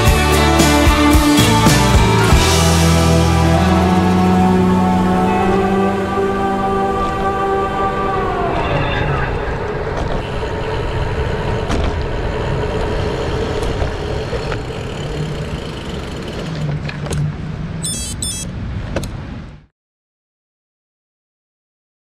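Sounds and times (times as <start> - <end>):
bicycle wind and road noise: 8.8 - 19.7
high electronic beeps: 17.8 - 18.5.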